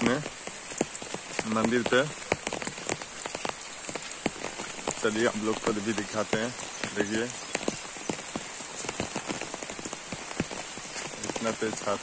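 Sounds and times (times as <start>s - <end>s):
heavy rain on an umbrella: 0.0s - 12.0s.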